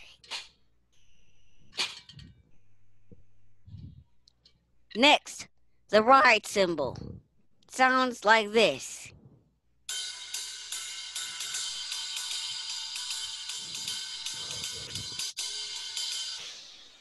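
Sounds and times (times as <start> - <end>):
ride cymbal struck with drumstick: 9.9 - 16.6.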